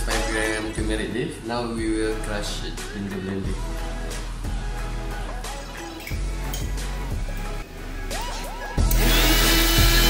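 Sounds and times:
background music with a beat: 0:00.0 - 0:10.0
blender whirring: 0:08.8 - 0:10.0.

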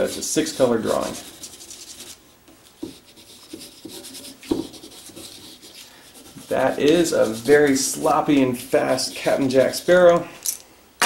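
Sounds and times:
markers scratching on paper: 0:00.0 - 0:02.2, 0:02.8 - 0:09.6.

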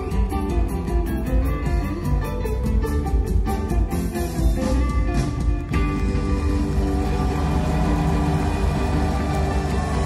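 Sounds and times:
live jam band music: 0:00.0 - 0:10.0.

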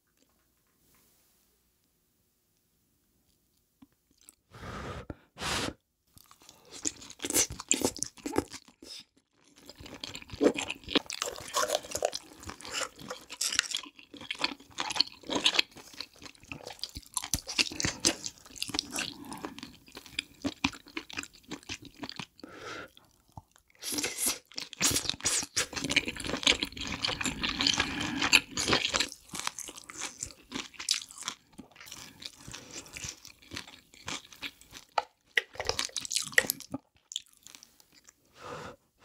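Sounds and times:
chewing and crunching seafood: 0:06.2 - 0:38.3.

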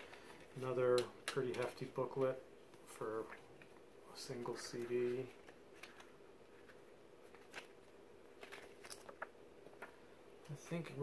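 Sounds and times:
paper pages rustling: 0:00.0 - 0:02.4, 0:04.4 - 0:10.0
faint steady hum: 0:00.0 - 0:11.0.

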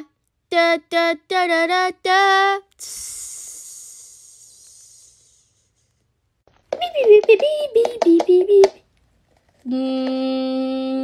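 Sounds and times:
high hiss: 0:02.8 - 0:05.8.

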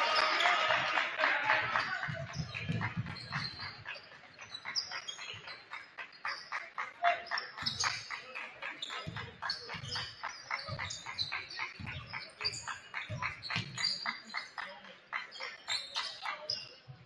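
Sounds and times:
players' voices: 0:00.0 - 0:17.0
sneaker squeaks: 0:01.7 - 0:17.0
basketball dribbling on hardwood: 0:09.0 - 0:10.0.

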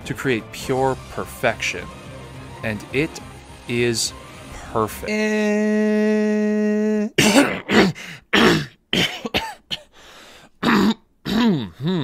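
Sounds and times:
person clearing throat: 0:06.8 - 0:09.9, 0:10.6 - 0:12.0
person coughing: 0:07.2 - 0:09.9, 0:10.6 - 0:12.0.

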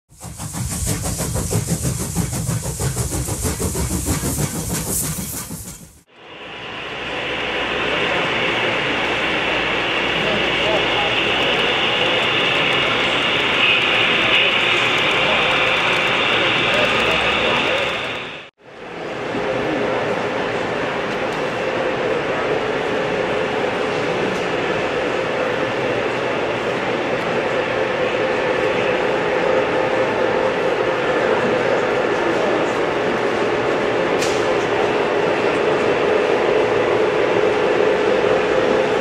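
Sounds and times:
model train running: 0:00.1 - 0:39.0
rhythmic beat with rapid clicks: 0:00.2 - 0:06.0
crowd chatter in a hall: 0:07.7 - 0:39.0.

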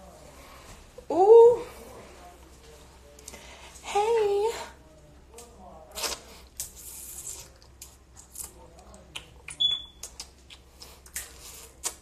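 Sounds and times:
high-pitched electronic beep: 0:09.6 - 0:10.0.

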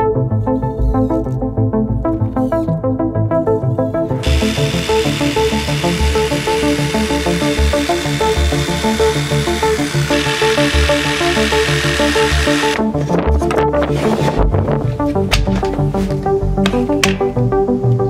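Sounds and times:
background music: 0:00.0 - 0:18.0
cordless drill drilling: 0:04.2 - 0:12.9
jigsaw cutting board: 0:04.2 - 0:12.9.

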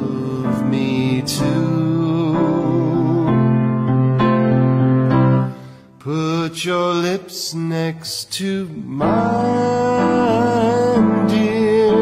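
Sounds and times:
man singing: 0:00.0 - 0:04.2, 0:05.6 - 0:12.0
instrumental accompaniment: 0:00.0 - 0:06.0.

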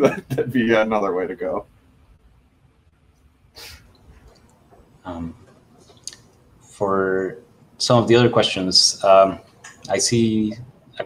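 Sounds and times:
breathy puff: 0:03.6 - 0:03.9.

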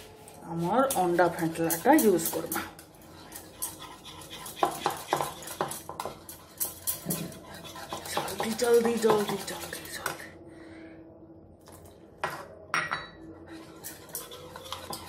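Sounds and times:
whisk beating batter in bowl: 0:00.8 - 0:10.2, 0:13.6 - 0:15.0.

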